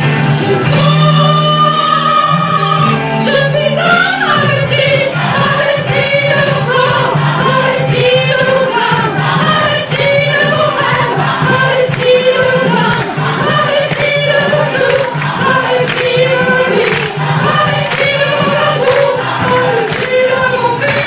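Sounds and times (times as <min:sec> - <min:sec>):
woman singing into a microphone: 0:00.4 - 0:21.0.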